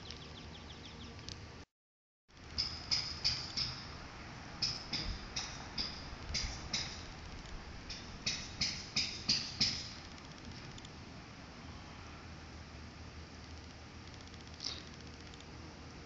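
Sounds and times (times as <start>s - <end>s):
small animal chirping: 0.0s - 1.4s, 13.5s - 15.5s.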